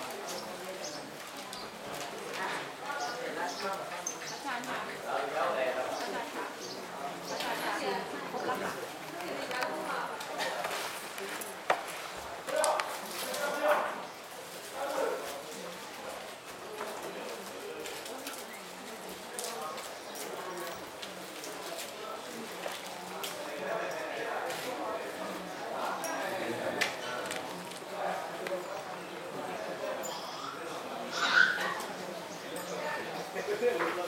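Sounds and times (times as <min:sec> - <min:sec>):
voices in a crowded hall: 0:00.0 - 0:34.0.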